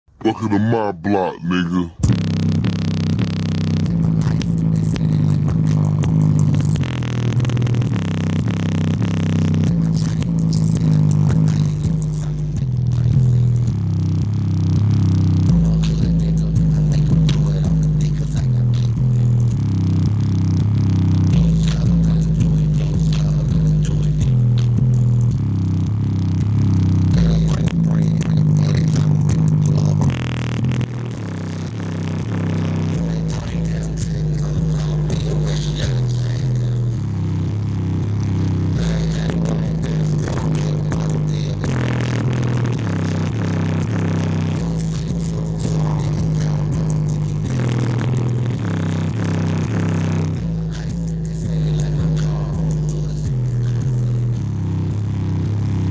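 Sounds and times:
distorted bass-heavy music: 0:00.0 - 0:55.9.

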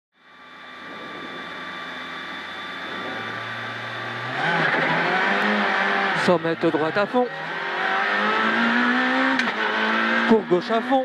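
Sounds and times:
rally car engine revving: 0:00.4 - 0:11.0.

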